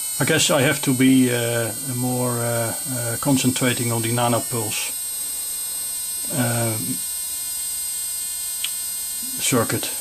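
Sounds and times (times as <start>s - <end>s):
electrical hum and high whine: 0.0s - 10.0s.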